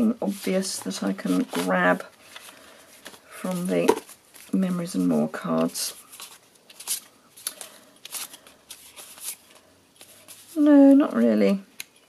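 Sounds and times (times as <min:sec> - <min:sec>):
paper cards rustling: 0:00.3 - 0:10.9.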